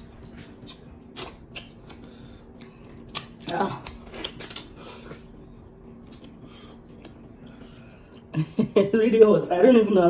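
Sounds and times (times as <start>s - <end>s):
wet eating smacks and clicks: 0.1s - 5.3s, 6.0s - 7.4s.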